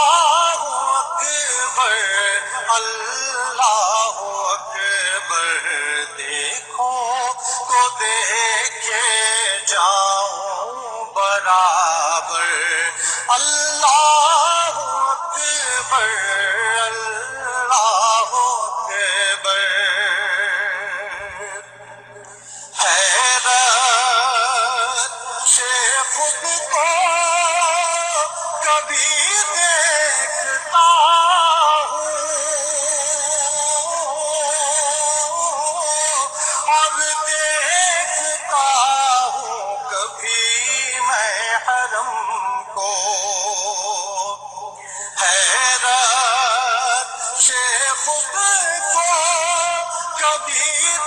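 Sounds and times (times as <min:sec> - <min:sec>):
person singing with vibrato: 0:00.0 - 0:51.0.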